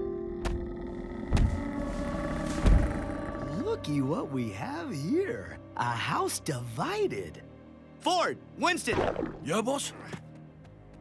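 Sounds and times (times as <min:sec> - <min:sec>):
sustained background score: 0:00.0 - 0:11.0
heavy dragon footfalls: 0:01.3 - 0:01.6, 0:02.4 - 0:03.0.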